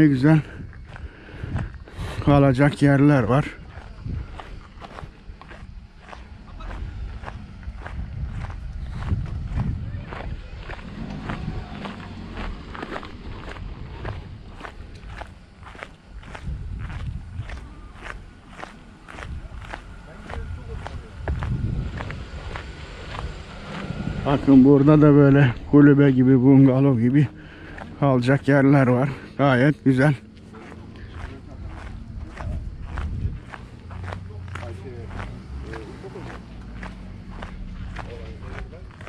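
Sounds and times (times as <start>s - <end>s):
footsteps on dirt road: 0.0s - 39.0s.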